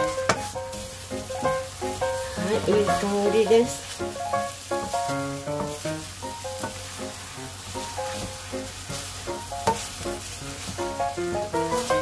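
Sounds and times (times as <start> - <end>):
food sizzling in a frying pan: 0.0 - 12.0
spatula scraping a pan: 0.0 - 12.0.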